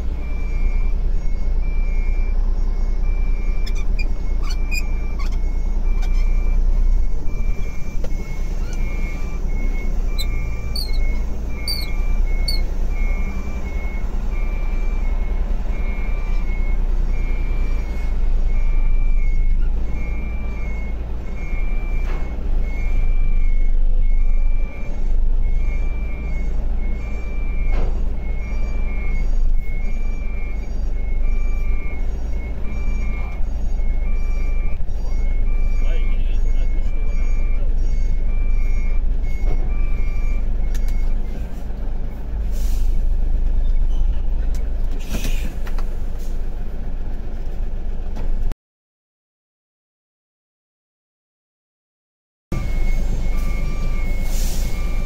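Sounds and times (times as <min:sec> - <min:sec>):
diesel engine running: 0:00.0 - 0:48.5, 0:52.5 - 0:55.0
truck reversing alarm beeping: 0:00.0 - 0:48.5, 0:52.5 - 0:55.0.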